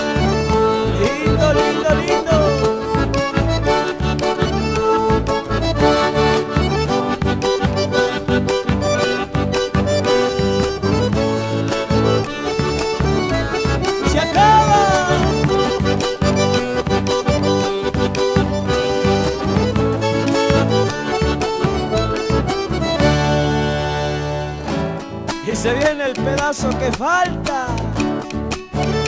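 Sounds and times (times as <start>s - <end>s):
accordion melody: 0.0s - 29.0s
guitar: 0.0s - 29.0s.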